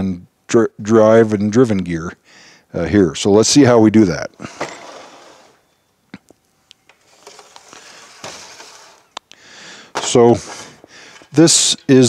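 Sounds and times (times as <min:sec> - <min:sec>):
rustling on workbench: 0:04.5 - 0:05.6, 0:06.9 - 0:09.2, 0:09.9 - 0:11.6.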